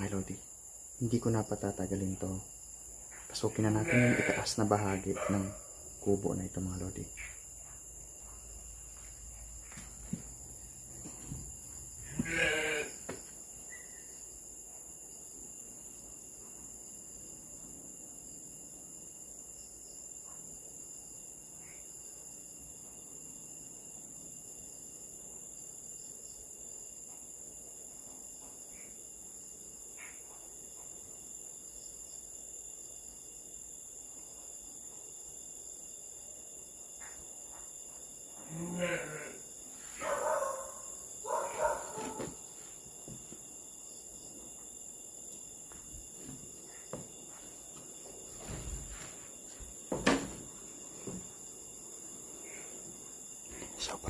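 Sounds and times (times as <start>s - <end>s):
night insects droning: 0.0s - 54.0s
sheep bleating: 3.8s - 4.5s, 12.1s - 13.0s, 38.5s - 39.4s.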